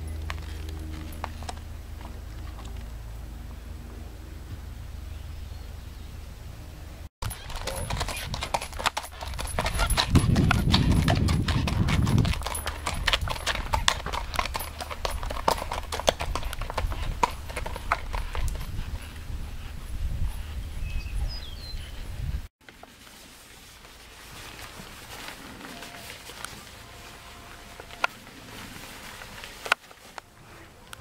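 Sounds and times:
horse hoofbeats on gravel: 0:00.0 - 0:03.0, 0:07.2 - 0:19.2.

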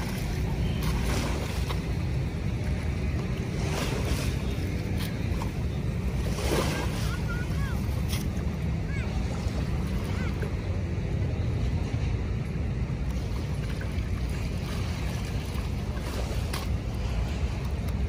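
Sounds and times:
water lapping at shoreline: 0:00.0 - 0:18.0
wind rumble on microphone: 0:00.0 - 0:18.0.

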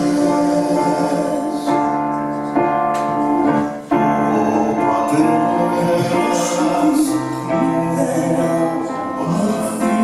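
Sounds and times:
keyboard piano chords: 0:00.0 - 0:10.0.

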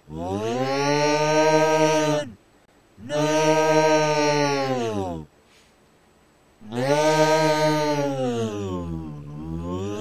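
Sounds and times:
creature yelling: 0:00.1 - 0:02.4, 0:03.0 - 0:05.3, 0:06.6 - 0:10.0.

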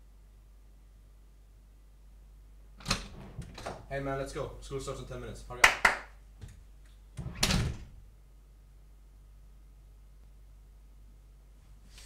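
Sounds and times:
door shutting with dull thud: 0:02.8 - 0:03.9, 0:07.2 - 0:08.0.

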